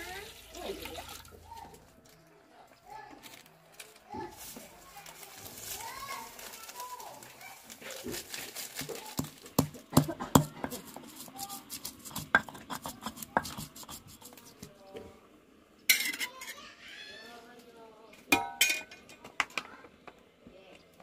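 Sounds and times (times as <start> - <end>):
stone pestle grinding in mortar: 9.2 - 14.7
metal spatula in a wok: 10.0 - 14.4, 15.9 - 16.6.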